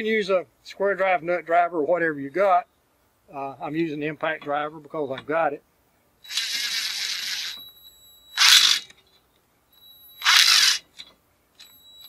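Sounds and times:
impact driver whining: 6.3 - 7.8, 8.4 - 8.9, 10.2 - 11.0.

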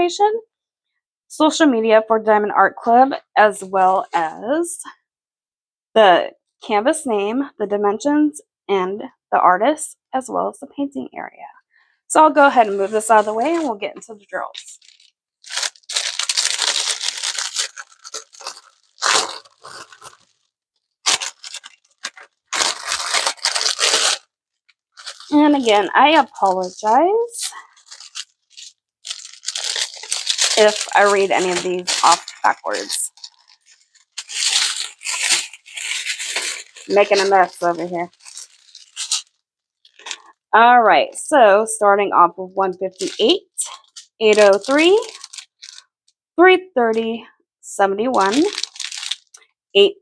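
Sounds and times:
plastic bag crinkling: 12.4 - 13.8, 14.4 - 40.4, 42.9 - 45.9, 48.2 - 49.4.

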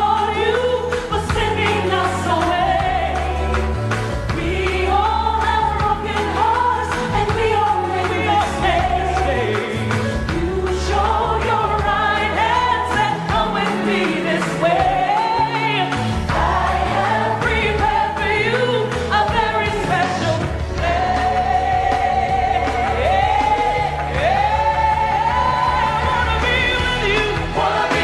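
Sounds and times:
backing singers: 0.0 - 28.0
bass line: 0.0 - 28.0
gospel song with female vocal: 0.0 - 28.0.

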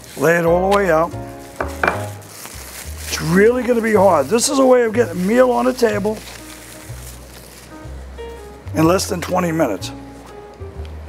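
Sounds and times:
plastic bag crinkling: 0.0 - 8.6
faint background music: 0.0 - 11.0.

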